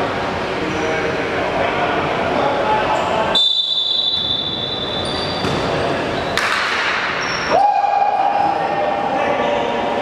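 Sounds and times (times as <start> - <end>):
players on court: 0.0 - 10.0
referee's whistle blast: 3.3 - 5.1.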